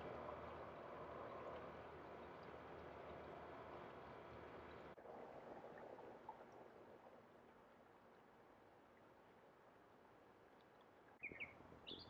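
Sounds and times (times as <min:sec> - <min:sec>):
faint outdoor background noise: 0:00.0 - 0:12.0.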